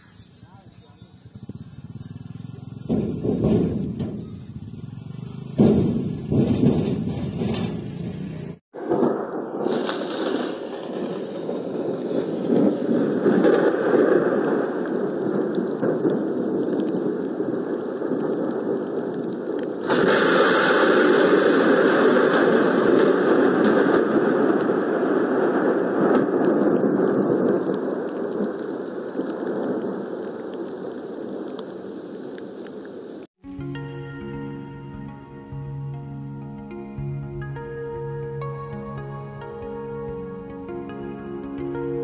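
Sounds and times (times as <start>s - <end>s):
rumbling thunder: 1.0s - 32.6s
loud thunder clap: 2.7s - 8.2s, 8.8s - 30.2s.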